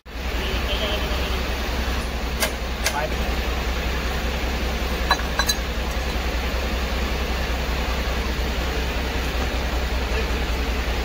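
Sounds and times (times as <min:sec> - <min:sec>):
low machine hum: 0:00.1 - 0:11.0.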